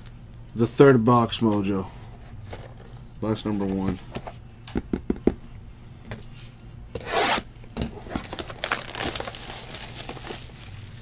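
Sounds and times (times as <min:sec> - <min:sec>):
plastic crinkling: 0:08.0 - 0:11.0
plastic shrink-wrap tearing: 0:08.0 - 0:11.0.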